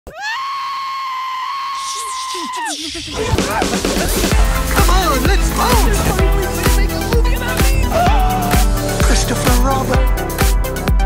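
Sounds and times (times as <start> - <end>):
cartoon goat screaming: 0.1 - 3.7.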